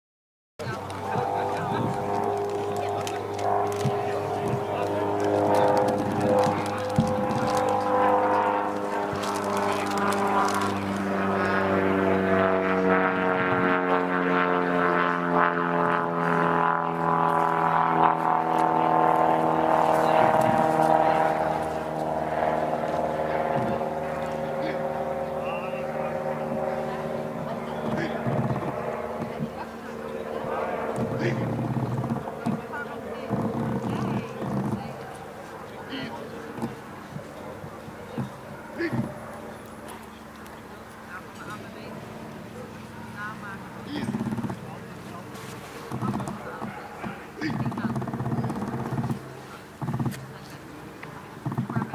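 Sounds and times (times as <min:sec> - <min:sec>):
engine drone: 0:00.6 - 0:51.9.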